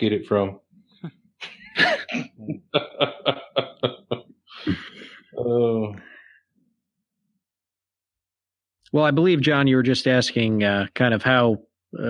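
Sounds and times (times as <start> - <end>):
man laughing: 1.0 - 5.9.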